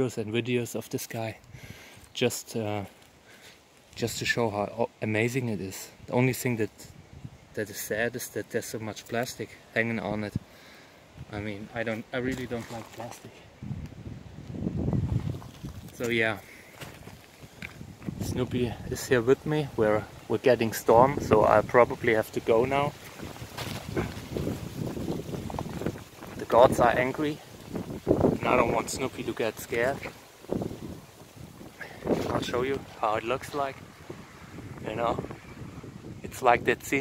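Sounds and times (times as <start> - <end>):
wind gusting against microphone: 5.2 - 37.0.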